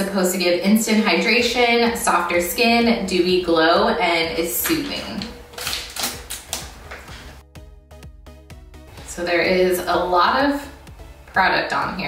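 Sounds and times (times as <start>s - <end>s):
background music with quick notes: 0.0s - 12.0s
foil sachet tearing and crinkling: 5.5s - 6.8s.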